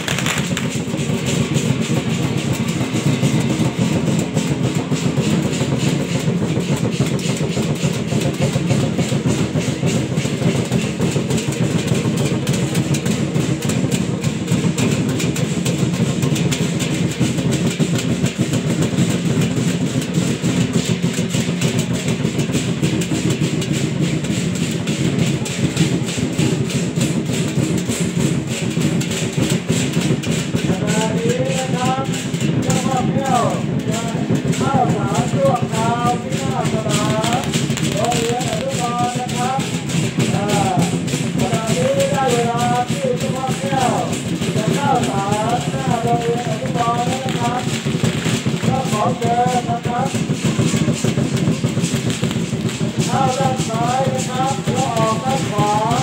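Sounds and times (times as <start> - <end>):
drums and gongs playing: 0.0 - 56.0.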